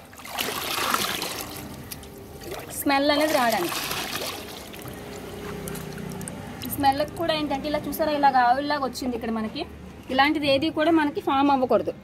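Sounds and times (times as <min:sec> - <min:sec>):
liquid pouring and splashing: 0:00.0 - 0:06.8.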